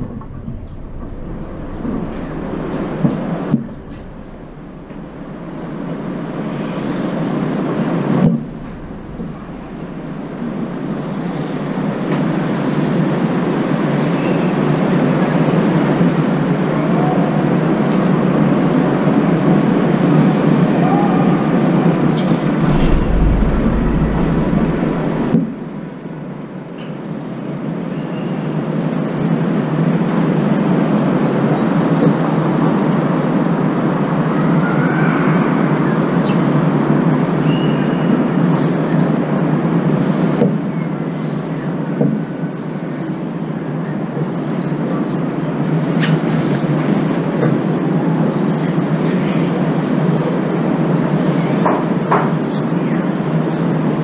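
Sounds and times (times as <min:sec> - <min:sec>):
loud rushing noise: 0:00.0 - 0:13.8, 0:21.5 - 0:26.2.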